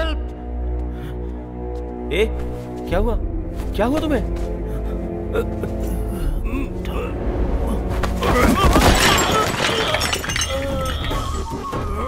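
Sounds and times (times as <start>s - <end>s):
ceramic washbasin shattering: 8.4s - 11.4s
falling pieces clinking: 8.5s - 11.6s.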